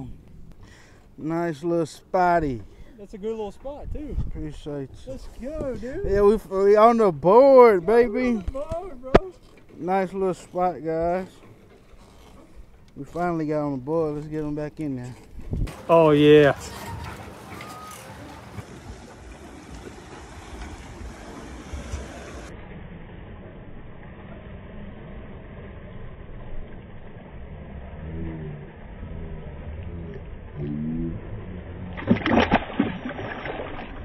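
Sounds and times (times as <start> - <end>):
water splashing: 0.0 - 34.0
steady low rumble: 16.5 - 34.0.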